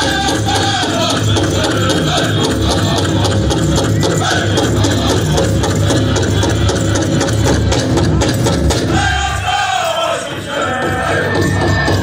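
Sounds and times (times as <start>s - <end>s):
singers' high voices: 0.0s - 7.0s, 8.9s - 12.0s
dancers' bells jingling: 0.0s - 12.0s
large drum pounding fast beat: 0.0s - 12.0s.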